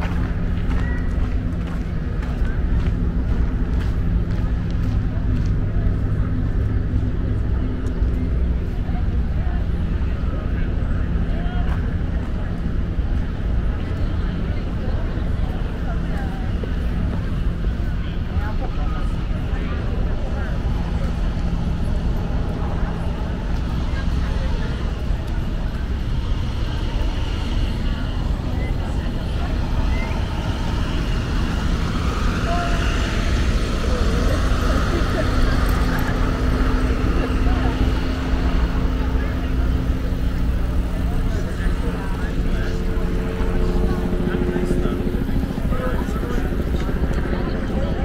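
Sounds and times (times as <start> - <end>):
passers-by talking: 0.0 - 48.0
road traffic rumble: 0.0 - 48.0.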